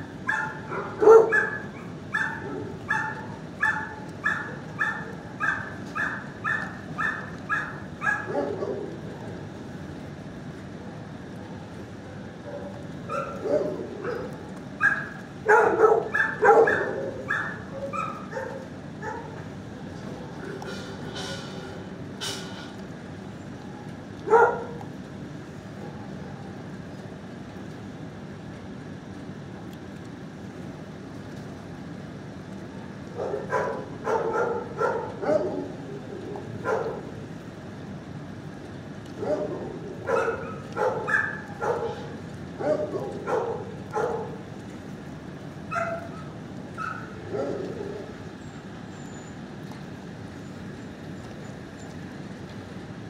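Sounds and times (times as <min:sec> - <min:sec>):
steady low hum: 0:00.0 - 0:53.0
dogs barking: 0:00.1 - 0:09.0, 0:12.2 - 0:19.5, 0:24.2 - 0:24.9, 0:33.1 - 0:37.2, 0:39.1 - 0:44.5, 0:45.7 - 0:48.2.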